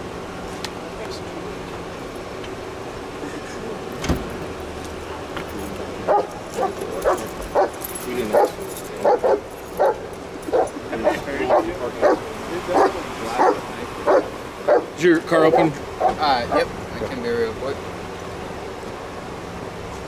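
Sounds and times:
dog barking: 0:06.1 - 0:14.9, 0:16.0 - 0:16.7.

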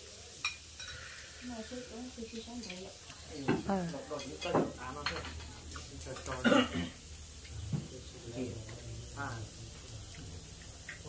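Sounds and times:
meat sizzling on grill pan: 0:00.0 - 0:11.0
table chatter: 0:00.4 - 0:11.0.

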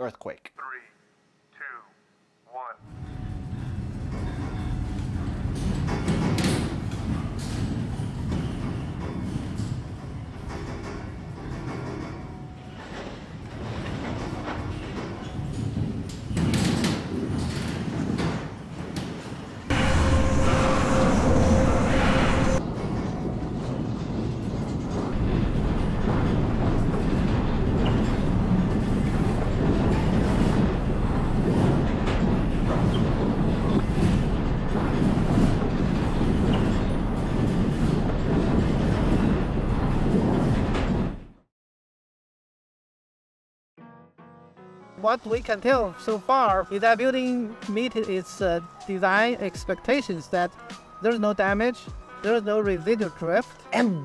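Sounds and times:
low rumbling: 0:02.8 - 0:10.5, 0:19.4 - 0:41.3
rattles and knocks: 0:02.9 - 0:41.4
steady hum: 0:19.7 - 0:22.6.

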